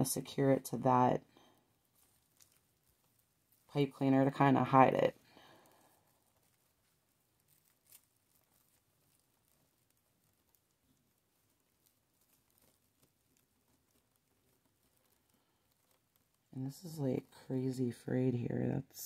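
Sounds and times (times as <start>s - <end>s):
plastic mesh crinkling: 1.3s - 17.6s.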